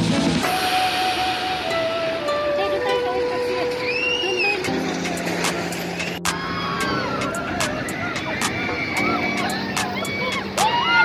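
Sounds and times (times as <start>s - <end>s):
amusement ride mechanical hum: 0.0s - 11.0s
people calling and shouting: 0.0s - 11.0s.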